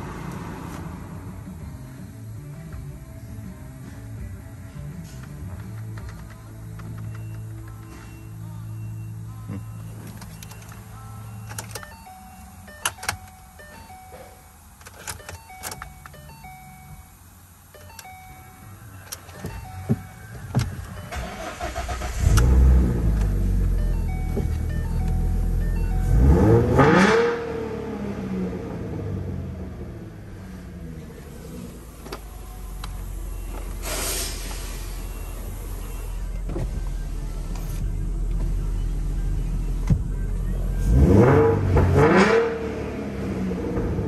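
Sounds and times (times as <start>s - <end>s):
car engine cranking and idling: 0.0s - 44.0s
engine revving: 21.1s - 24.2s, 25.0s - 30.6s, 40.7s - 44.0s
electronic chime tones: 23.7s - 27.1s.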